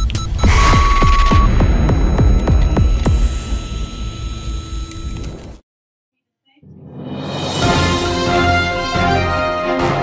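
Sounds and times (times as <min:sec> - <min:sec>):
long electronic beep: 0:00.0 - 0:05.1.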